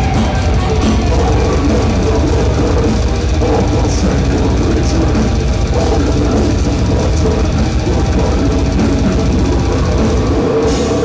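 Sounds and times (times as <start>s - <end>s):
bass guitar: 0.0s - 11.0s
distorted electric guitars: 0.0s - 11.0s
drum kit: 0.0s - 11.0s.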